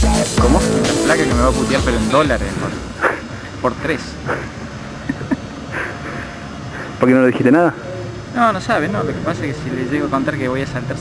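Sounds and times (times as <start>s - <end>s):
man laughing: 4.3s - 6.3s.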